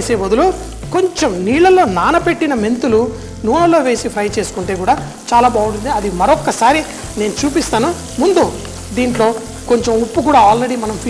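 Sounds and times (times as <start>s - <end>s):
onions sizzling in oil: 0.0s - 11.0s
wooden spatula stirring: 4.5s - 11.0s.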